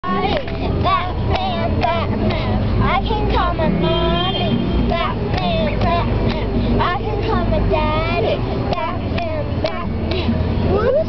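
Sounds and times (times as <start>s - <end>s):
girls chanting rhyme: 0.0s - 10.4s
traffic rumble: 0.0s - 11.0s
hand claps: 0.3s - 2.4s, 4.9s - 6.5s, 8.7s - 10.3s.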